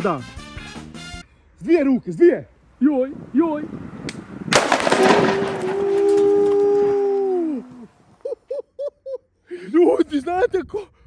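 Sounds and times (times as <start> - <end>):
firecrackers crackling pops: 4.0 - 7.9
firecracker bang: 4.2 - 7.8.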